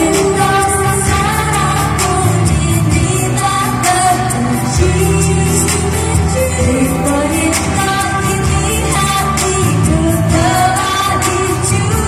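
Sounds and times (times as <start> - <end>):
women singing into microphones: 0.0 - 12.0.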